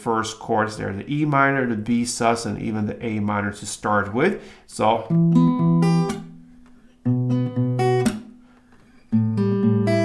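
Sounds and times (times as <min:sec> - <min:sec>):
acoustic guitar picked notes: 0:04.9 - 0:10.0.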